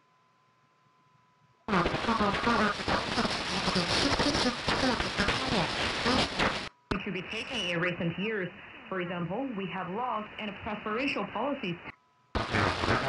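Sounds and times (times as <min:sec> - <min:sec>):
radio broadcast speech: 0:01.7 - 0:13.0
radio hiss and static: 0:01.7 - 0:13.0.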